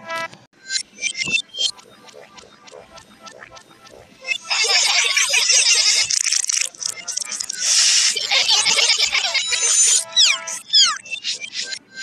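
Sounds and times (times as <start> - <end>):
rapid stutter of chopped sounds: 0.0 - 12.0.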